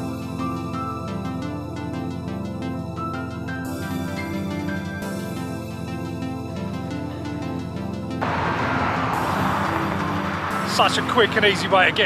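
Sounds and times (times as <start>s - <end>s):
background music: 0.0s - 12.0s
wind and road rushing: 8.2s - 12.0s.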